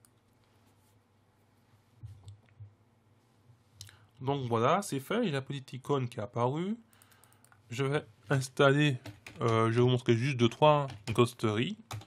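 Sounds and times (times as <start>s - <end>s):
low room hum: 0.0s - 12.0s
computer mouse clicks: 6.9s - 7.6s.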